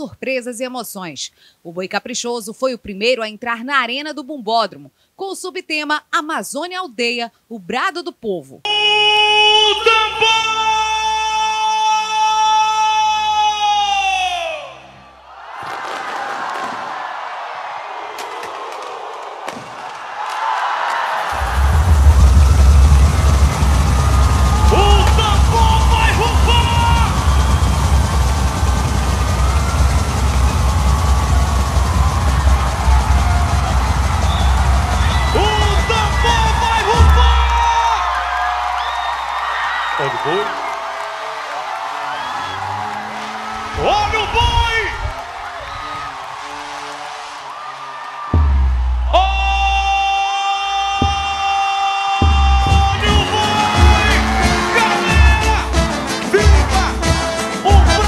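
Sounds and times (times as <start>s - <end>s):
crowd cheering: 8.7s - 58.0s
heavy drums: 21.3s - 39.4s, 48.3s - 50.1s, 50.8s - 58.0s.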